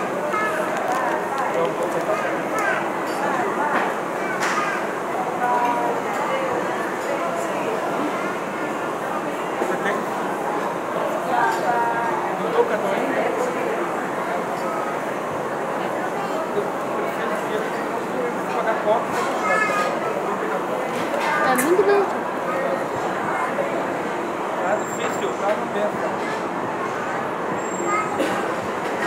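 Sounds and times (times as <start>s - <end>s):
murmur of many voices: 0.0s - 29.0s.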